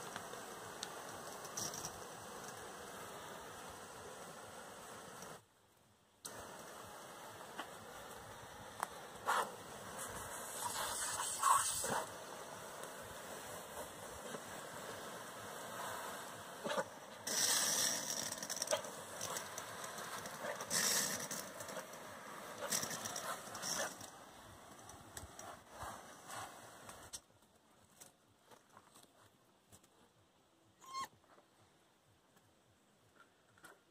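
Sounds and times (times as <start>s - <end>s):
hose nozzle hissing mist: 6.3s - 27.1s.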